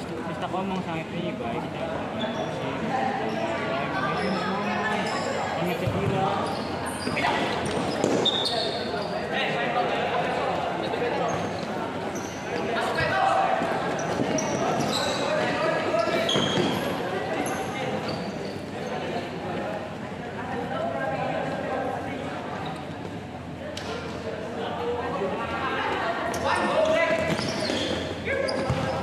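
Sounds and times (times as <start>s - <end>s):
shoe squeaks: 3.2s - 9.3s, 11.3s - 12.7s, 13.9s - 18.7s, 26.3s - 29.0s
ball kicked and bouncing on court: 5.8s - 6.2s, 28.5s - 29.0s.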